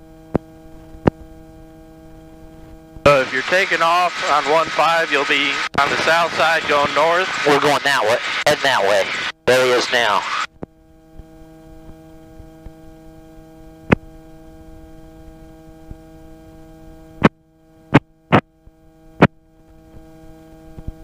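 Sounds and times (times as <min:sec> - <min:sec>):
steady electrical hum: 0:00.0 - 0:21.0.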